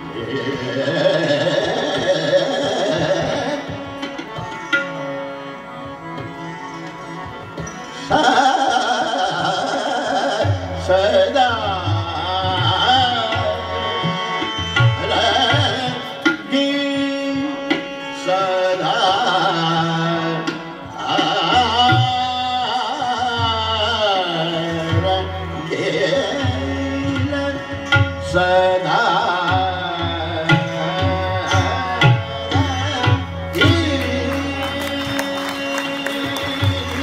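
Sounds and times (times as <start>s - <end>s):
man singing ornamented melody: 0.0s - 3.8s, 15.0s - 37.0s
harmonium drone: 0.0s - 37.0s.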